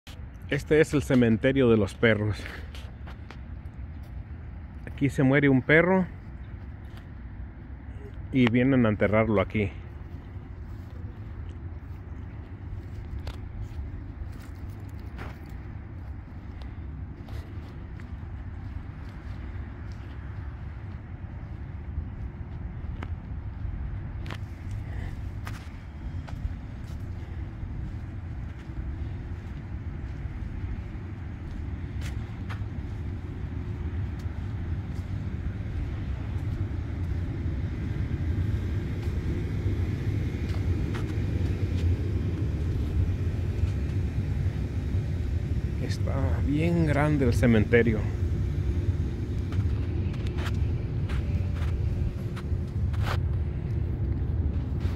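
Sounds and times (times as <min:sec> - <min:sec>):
low outdoor rumble: 0:00.0 - 0:54.9.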